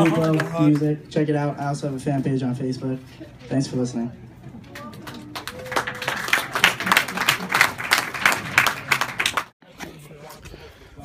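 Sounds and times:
small audience clapping: 0.0 - 1.0, 4.7 - 9.6.

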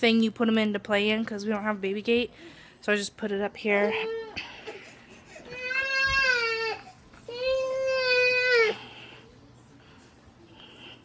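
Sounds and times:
baby crying: 4.0 - 8.8.

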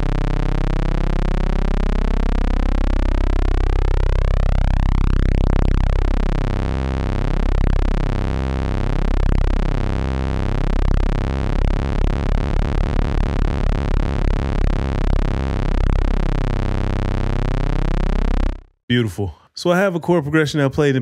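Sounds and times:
sustained detuned synthesizer note: 0.0 - 18.8.

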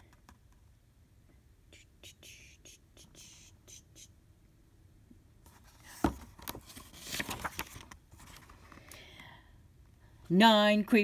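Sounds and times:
faint whispering: 1.7 - 4.2.

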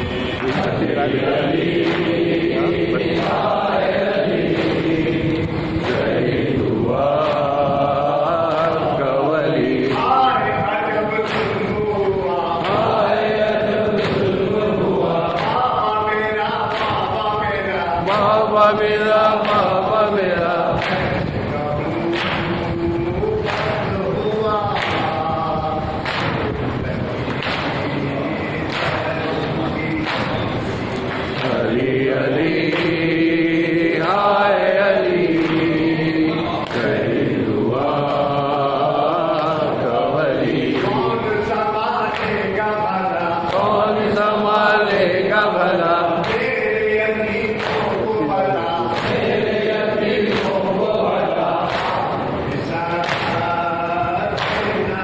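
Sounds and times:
men chanting together: 0.0 - 55.0
chest-beating slaps: 0.2 - 10.1, 11.1 - 12.0, 18.1 - 24.0, 24.6 - 37.3, 54.3 - 55.0.

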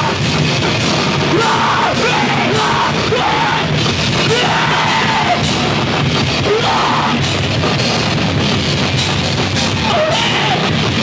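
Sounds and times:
drum kit: 0.0 - 11.0
singer shouting vocals: 1.2 - 5.6, 6.4 - 7.3, 9.8 - 10.8.

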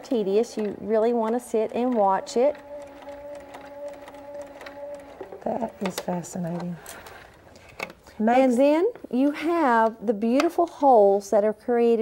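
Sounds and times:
sewing machine running: 0.0 - 7.2.

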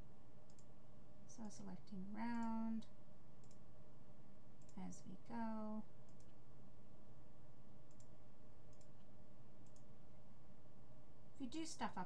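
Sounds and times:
low background hiss: 0.0 - 12.0
computer mouse click: 0.5 - 0.7, 2.3 - 2.6, 3.4 - 3.6, 4.6 - 4.8, 6.1 - 6.4, 7.9 - 9.9.

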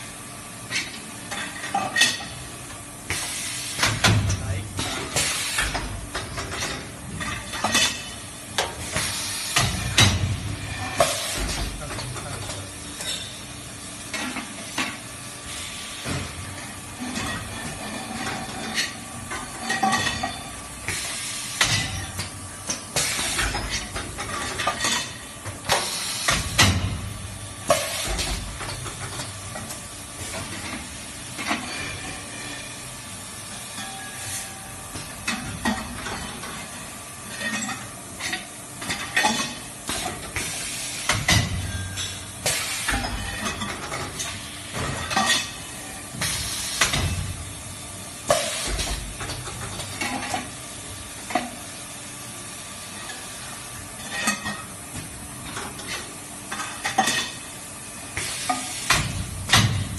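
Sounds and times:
welding machine sizzling hiss: 0.0 - 4.1, 7.9 - 11.6, 12.6 - 19.6, 20.3 - 41.3, 42.0 - 59.9
metallic clank with ring: 33.8 - 34.2.

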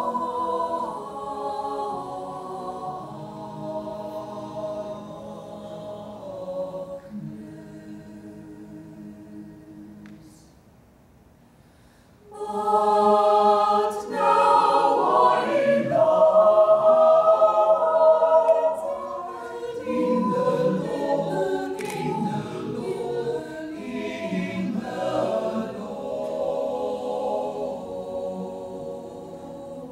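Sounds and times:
mixed choir singing: 0.0 - 10.5, 12.2 - 29.9.

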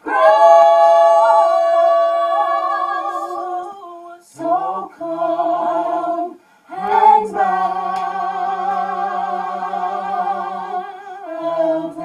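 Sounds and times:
a cappella group holding chord: 0.0 - 12.0.

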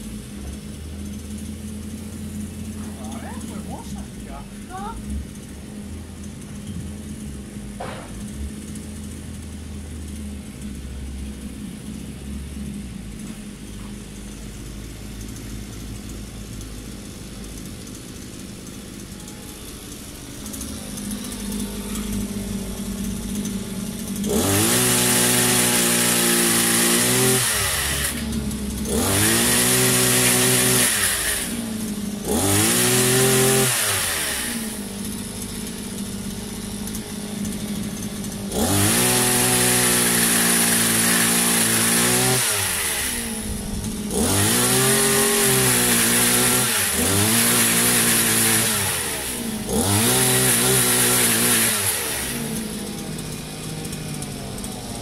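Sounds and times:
pole chainsaw engine revving: 0.0 - 55.0
chain cutting branches: 14.0 - 55.0.

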